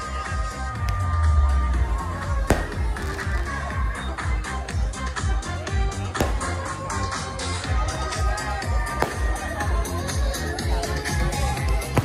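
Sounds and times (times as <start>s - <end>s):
music with steady beat: 0.0s - 12.0s
firework bang: 2.4s - 3.5s, 6.2s - 6.6s.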